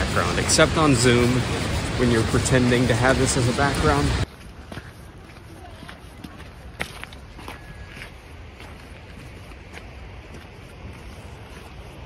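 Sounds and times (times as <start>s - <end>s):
footsteps on loose stones: 4.2s - 12.0s.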